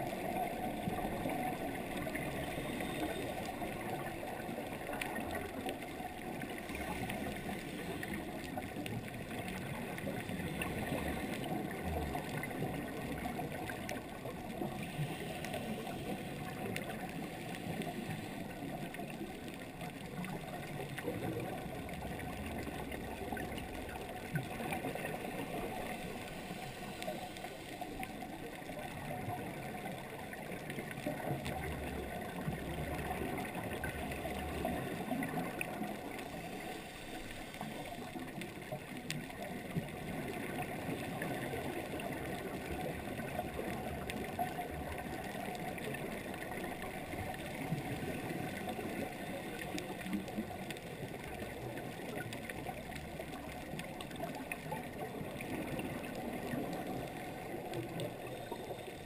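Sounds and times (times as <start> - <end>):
muffled underwater water rush: 0.0 - 59.0.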